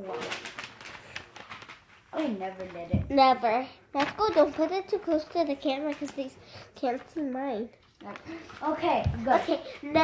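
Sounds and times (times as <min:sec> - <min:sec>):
paper rustling and crinkling: 0:00.0 - 0:03.2, 0:04.0 - 0:10.0.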